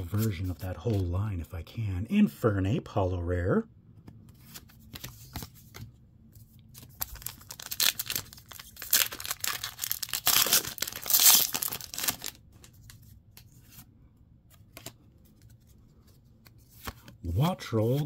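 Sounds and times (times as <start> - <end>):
foil wrapper tearing: 7.0 - 12.4.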